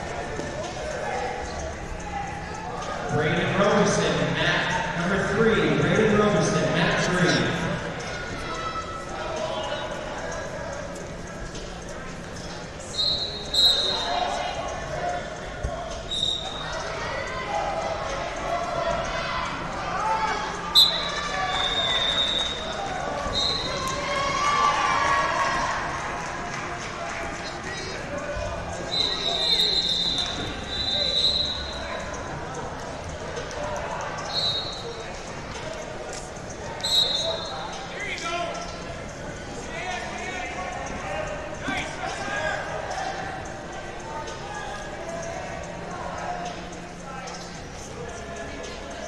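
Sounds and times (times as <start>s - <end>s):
referee whistle blasts: 12.9s - 14.1s, 20.7s - 22.6s, 28.9s - 31.7s, 36.8s - 37.5s
crowd calling out: 12.9s - 32.6s.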